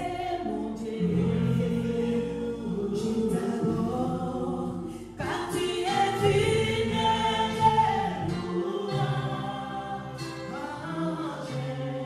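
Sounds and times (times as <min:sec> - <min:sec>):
vocal group singing in harmony: 0:00.0 - 0:12.0.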